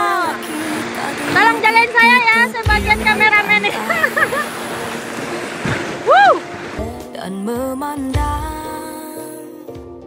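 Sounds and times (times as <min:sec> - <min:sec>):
river rapids rushing: 0:00.0 - 0:07.4
music: 0:00.0 - 0:10.0
person whooping: 0:06.0 - 0:06.5.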